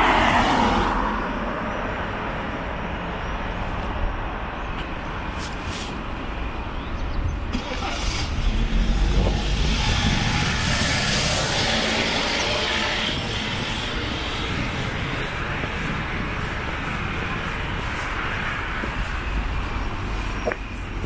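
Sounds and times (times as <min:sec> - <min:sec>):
car driving past: 0:07.6 - 0:15.0.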